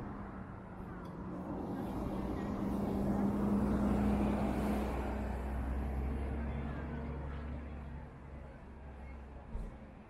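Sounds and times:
city street noise: 0:00.0 - 0:10.0
vehicle engine passing by: 0:01.2 - 0:07.8.

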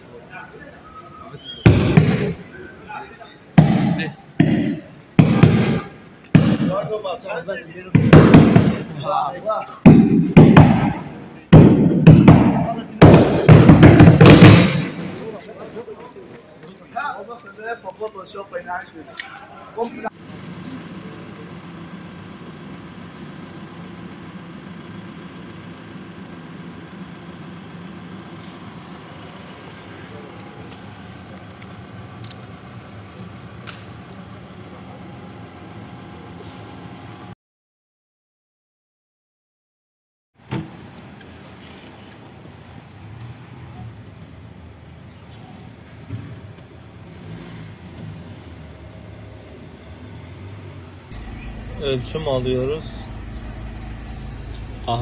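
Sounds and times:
motor vehicle engine hum: 0:00.0 - 0:37.4, 0:40.5 - 0:55.0
street background: 0:00.0 - 0:37.4, 0:40.4 - 0:55.0
engine idling: 0:19.8 - 0:37.3, 0:47.9 - 0:55.0.

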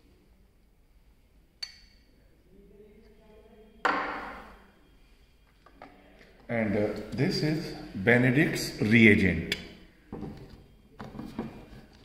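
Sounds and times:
glass clink: 0:01.6 - 0:02.1
glassware knocking on table: 0:03.8 - 0:04.4.

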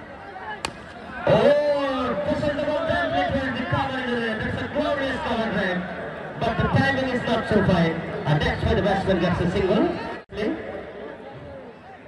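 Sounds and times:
crowd: 0:00.0 - 0:12.0
cricket bat hitting ball: 0:00.6 - 0:01.0.

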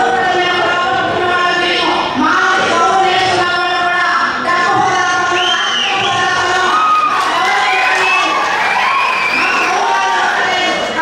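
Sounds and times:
woman speaking through microphone: 0:00.0 - 0:08.4
crowd cheering: 0:05.4 - 0:11.0.

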